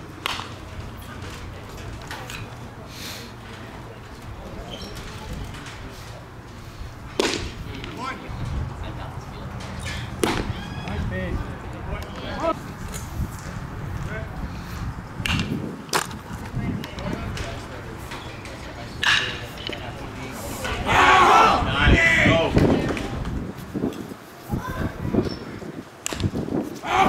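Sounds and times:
faint voices: 0.0s - 27.0s
sharp cracks of ball on bat: 0.2s - 0.5s, 7.1s - 7.6s, 10.2s - 10.5s, 15.2s - 16.2s, 26.0s - 26.3s
baseball popping into leather mitt: 7.2s - 8.0s, 10.2s - 10.5s, 26.0s - 26.3s.

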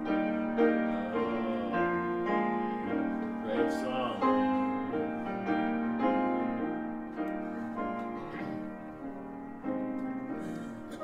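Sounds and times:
piano playing slow hymn chords: 0.0s - 11.0s.

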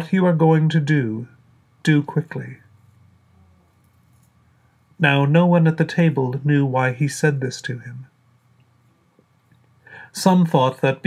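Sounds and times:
man speaking: 0.0s - 2.7s, 5.0s - 8.1s, 10.1s - 11.0s.

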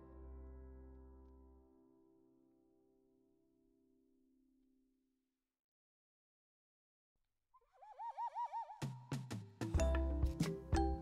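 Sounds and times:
warbling bird-like whistle: 7.6s - 9.2s.

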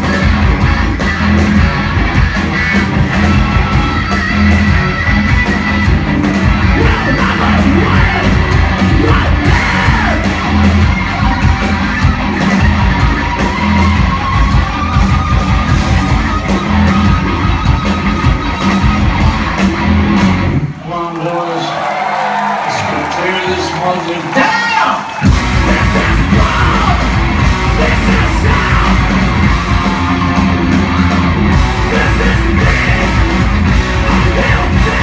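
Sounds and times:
high guitar line: 0.0s - 20.8s, 25.2s - 35.0s
punk rock band playing live: 0.0s - 22.7s, 23.5s - 35.0s
crowd yelling and whooping: 0.0s - 35.0s.

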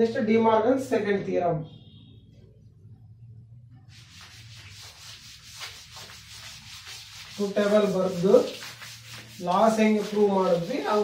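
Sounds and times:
cloth wiping a blackboard: 3.9s - 11.0s.

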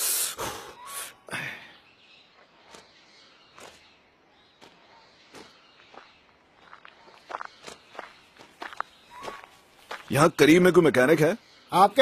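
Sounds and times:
light crunching footsteps: 2.2s - 10.8s.

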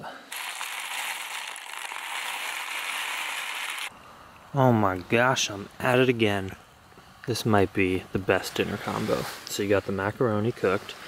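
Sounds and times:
dry pasta pouring into cup: 0.3s - 3.9s.

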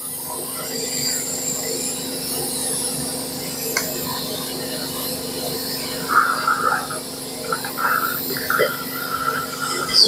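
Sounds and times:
dental suction humming: 0.2s - 10.0s.

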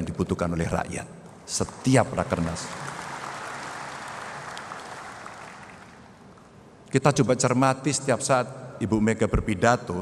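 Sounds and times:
large audience applauding: 1.6s - 6.5s.

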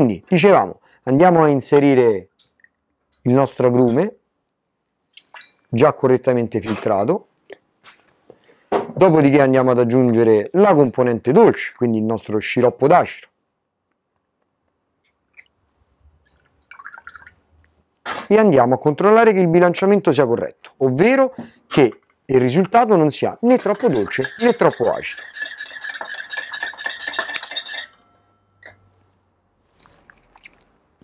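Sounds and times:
spoon clinking in metal tin: 23.5s - 28.8s.

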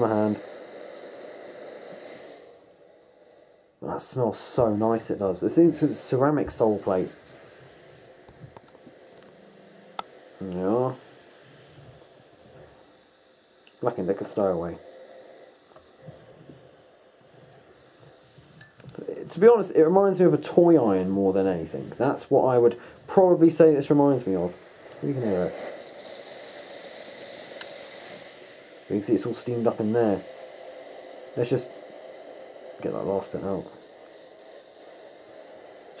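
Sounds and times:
hiss of steam venting: 0.0s - 36.0s.

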